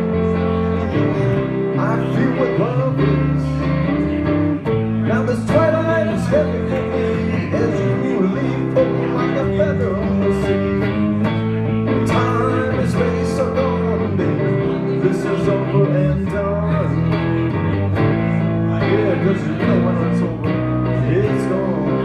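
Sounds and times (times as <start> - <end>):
electric bass: 0.0 - 22.0
guitar: 0.0 - 22.0.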